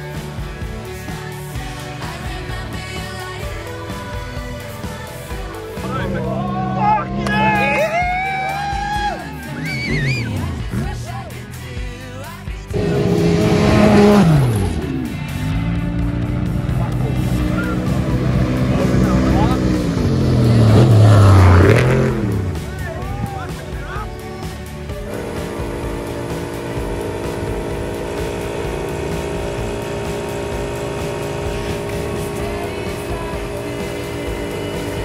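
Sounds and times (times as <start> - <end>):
race vehicles passing at speed: 12.7 - 35.0.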